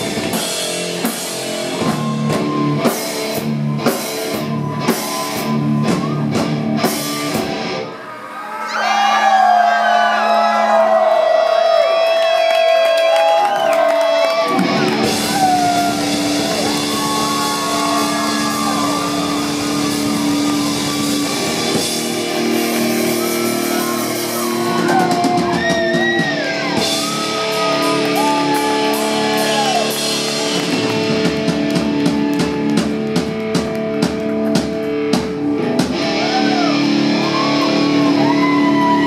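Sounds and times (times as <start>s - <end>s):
drums and bass: 0.0s - 7.9s, 14.0s - 39.0s
distorted electric guitar: 0.0s - 8.0s, 14.3s - 39.0s
rock band playing: 0.0s - 8.0s, 12.8s - 39.0s
crowd whooping: 1.3s - 6.8s, 7.5s - 34.8s, 35.6s - 39.0s.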